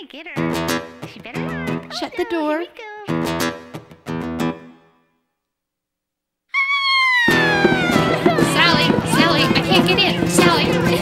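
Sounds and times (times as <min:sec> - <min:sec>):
acoustic guitar chord strummed: 0:00.4 - 0:02.0, 0:03.1 - 0:05.0, 0:07.3 - 0:11.0
loud guitar music: 0:00.4 - 0:02.4, 0:03.0 - 0:04.9, 0:07.2 - 0:11.0
high-pitched scream: 0:06.5 - 0:09.3.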